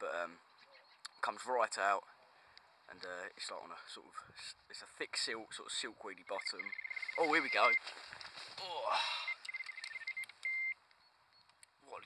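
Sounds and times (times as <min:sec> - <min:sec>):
bite alarm beeps: 0:06.3 - 0:07.9, 0:09.1 - 0:11.5
bite alarm tone: 0:06.4 - 0:07.8.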